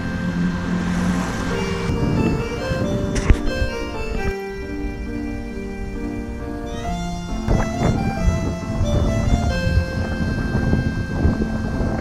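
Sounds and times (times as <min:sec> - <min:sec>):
background music with melody: 0:00.0 - 0:12.0.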